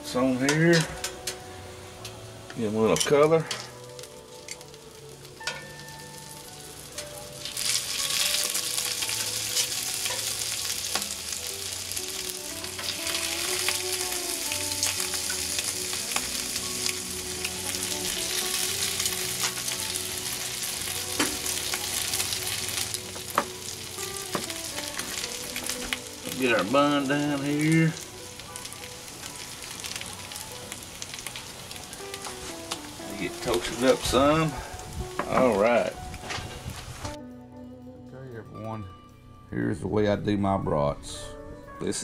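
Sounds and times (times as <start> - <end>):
sausages sizzling on griddle: 0.0 - 37.2.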